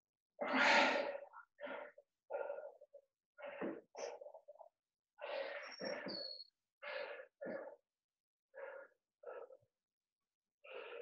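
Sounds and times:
person breathing hard: 0.6 - 4.4, 5.2 - 6.2, 6.8 - 7.9, 8.5 - 9.8, 10.6 - 11.0.

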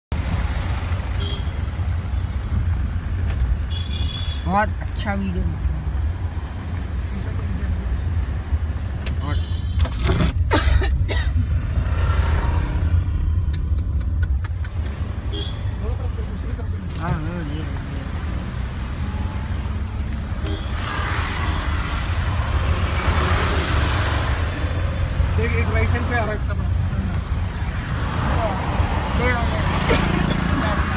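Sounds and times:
highway traffic rumble: 0.1 - 30.9.

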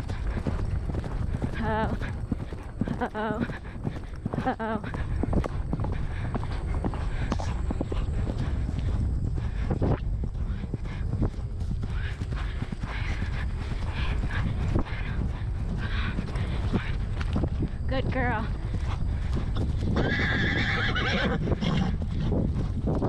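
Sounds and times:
horse hoofbeats on grass: 0.0 - 23.0
wind rumble on microphone: 0.0 - 23.0.

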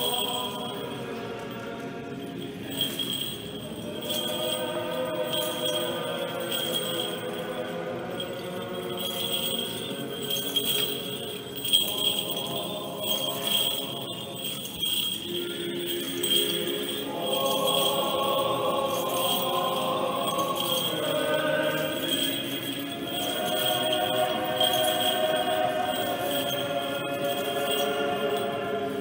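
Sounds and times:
censer bells jingling: 0.0 - 29.0
choir singing chant: 0.0 - 29.0.

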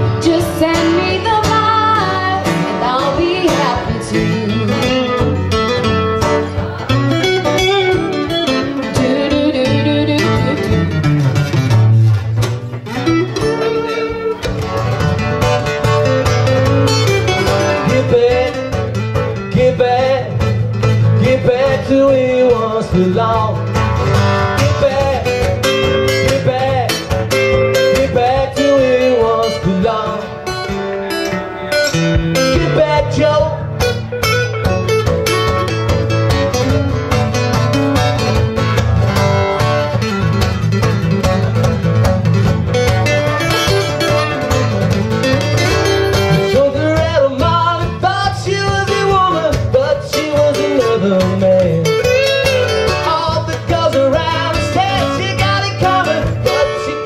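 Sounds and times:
acoustic guitar picking and strumming: 0.0 - 57.0.

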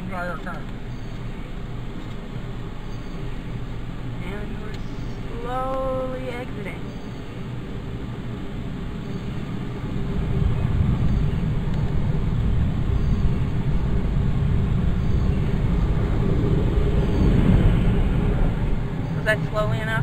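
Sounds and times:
car engine and tyres rumble: 0.0 - 20.0.

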